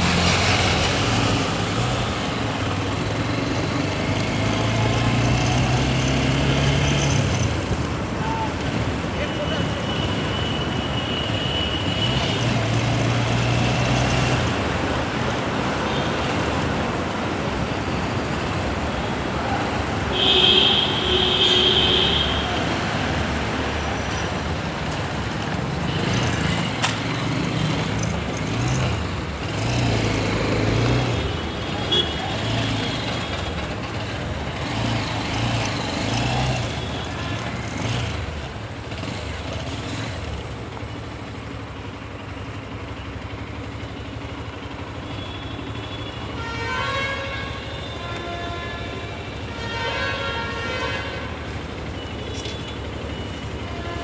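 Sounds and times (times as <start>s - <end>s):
motorcycle engine and road noise: 0.0s - 54.0s
vehicle horn honking: 20.1s - 22.7s, 31.3s - 33.4s, 45.0s - 51.5s, 53.6s - 54.0s.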